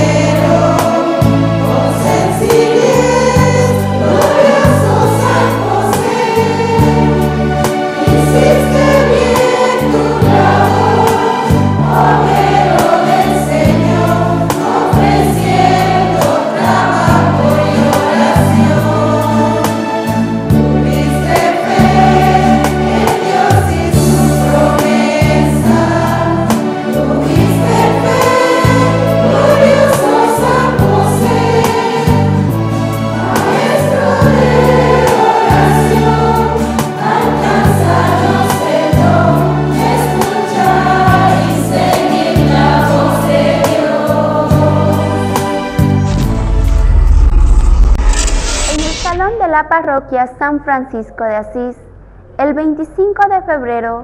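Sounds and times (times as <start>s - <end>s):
congregation singing a hymn: 0.0s - 46.2s
instrumental accompaniment with bass: 0.0s - 49.1s.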